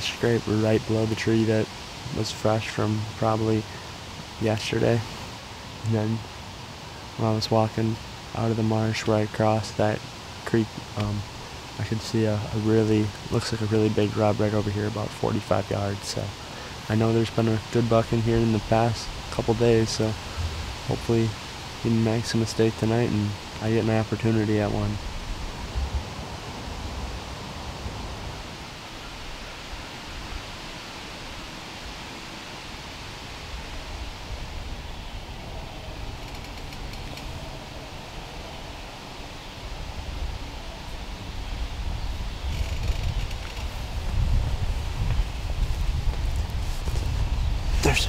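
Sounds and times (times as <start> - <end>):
wind rustling leaves: 0.0 - 48.0
wind buffeting microphone: 18.0 - 21.4, 24.2 - 28.5, 33.4 - 48.0.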